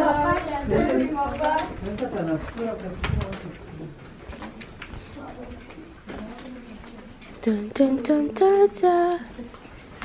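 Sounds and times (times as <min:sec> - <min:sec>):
indistinct voices in tunnel: 0:00.0 - 0:09.7.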